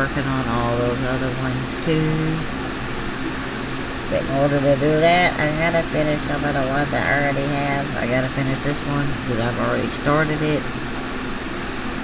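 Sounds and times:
fan humming: 0.0 - 12.0.

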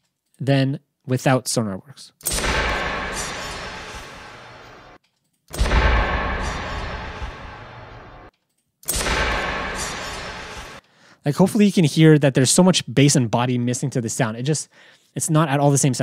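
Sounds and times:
deep impact sound effect: 2.3 - 8.3, 8.9 - 10.8.

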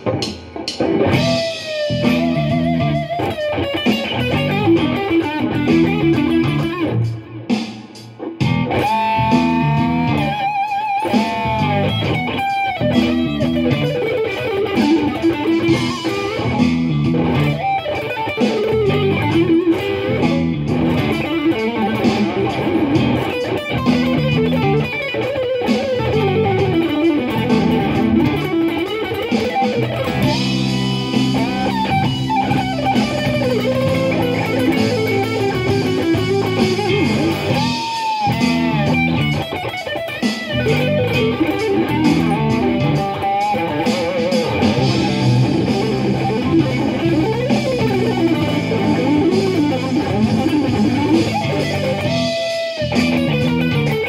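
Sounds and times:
backing track: 0.0 - 54.0
electric guitar lead: 0.0 - 54.0.

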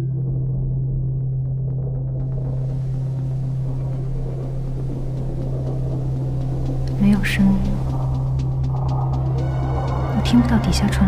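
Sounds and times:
low drone: 0.0 - 11.0.

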